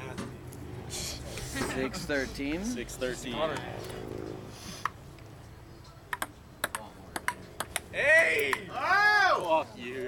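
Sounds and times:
ping-pong ball clicking: 6.1s - 7.9s.

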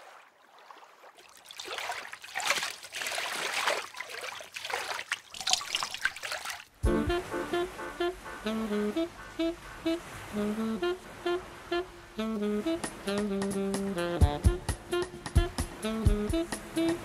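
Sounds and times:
liquid trickling into water: 0.0s - 6.8s
bouncy music: 6.8s - 17.0s.

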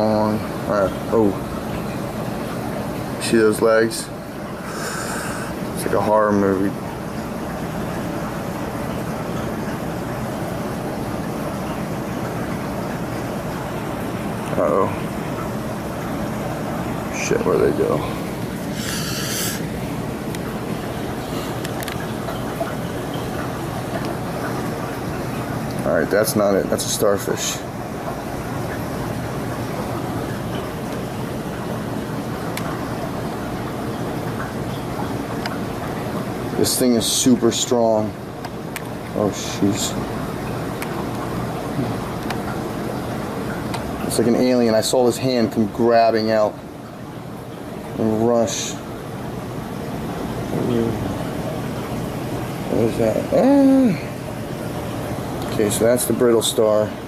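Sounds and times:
aquarium water rushing: 0.0s - 57.0s.

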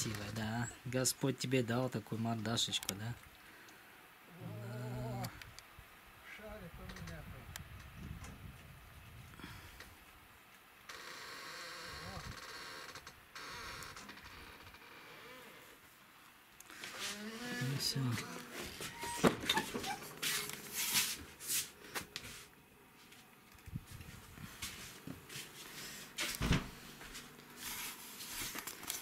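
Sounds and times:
faint steady hiss: 0.0s - 29.0s.

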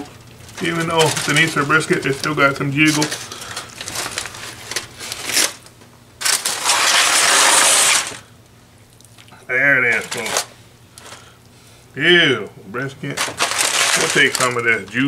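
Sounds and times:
aluminium foil crinkling: 0.0s - 8.3s, 9.8s - 11.3s, 13.0s - 15.0s.

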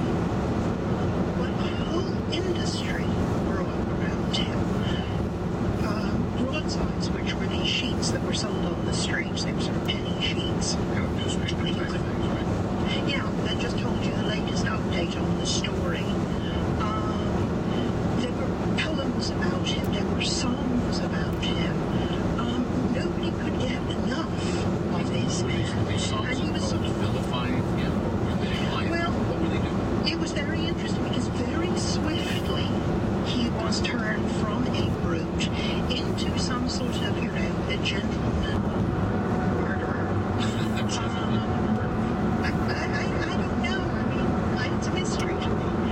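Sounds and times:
road and tyre noise: 0.0s - 45.9s
faint talking: 18.3s - 32.7s.

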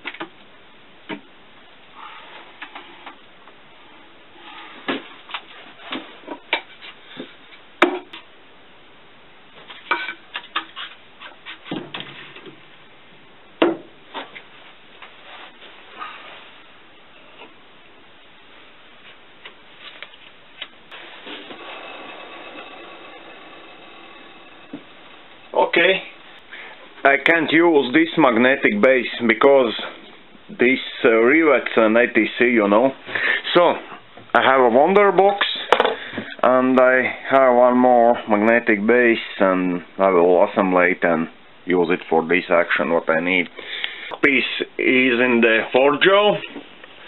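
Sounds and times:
lathe running with hum: 20.9s - 26.5s.

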